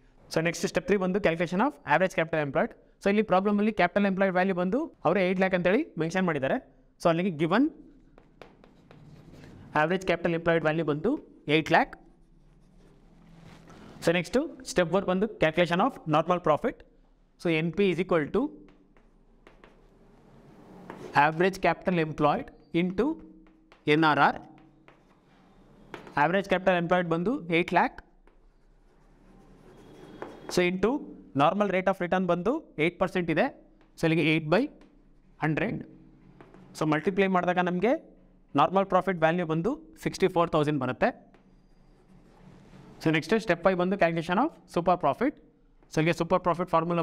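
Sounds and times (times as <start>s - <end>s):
chalk tapping on board: 8.0s - 9.5s, 18.6s - 20.0s, 23.2s - 26.2s
chalk scratching on blackboard: 8.2s - 10.2s, 12.0s - 14.0s, 18.7s - 21.4s, 24.5s - 26.2s, 28.2s - 30.6s, 41.3s - 43.0s.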